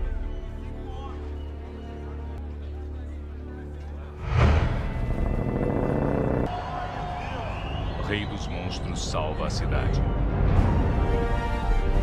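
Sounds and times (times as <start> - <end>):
film score music: 0.0 - 12.0
dense low rumble: 4.2 - 6.5.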